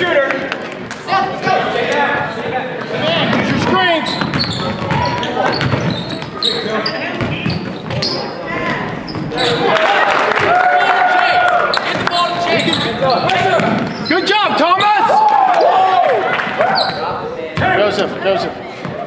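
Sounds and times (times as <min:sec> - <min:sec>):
indistinct voices in echoing hall: 0:00.0 - 0:19.0.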